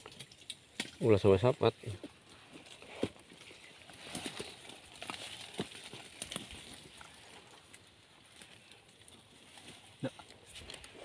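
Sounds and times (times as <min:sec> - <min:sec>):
rustling in dry leaves: 0:02.1 - 0:11.0.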